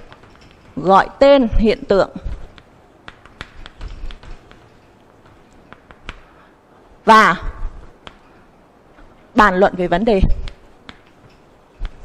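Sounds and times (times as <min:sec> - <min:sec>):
chalk tapping on blackboard: 0:02.3 - 0:06.4, 0:08.0 - 0:08.3.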